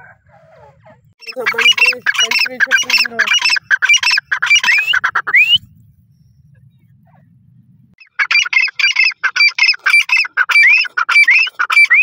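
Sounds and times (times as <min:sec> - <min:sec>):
bird calling shrill notes: 0:01.2 - 0:06.4.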